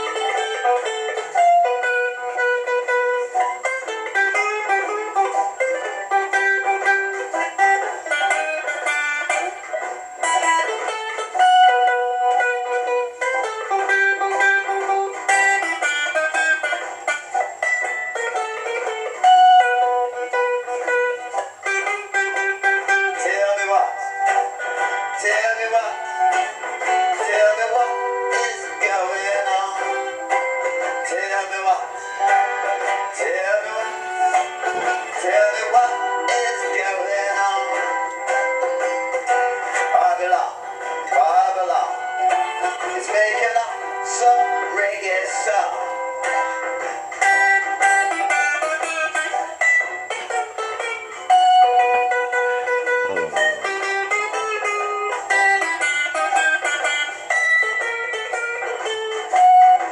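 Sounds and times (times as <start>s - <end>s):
acoustic guitar strumming: 0.0s - 59.9s
man singing: 22.9s - 24.4s, 25.0s - 46.0s.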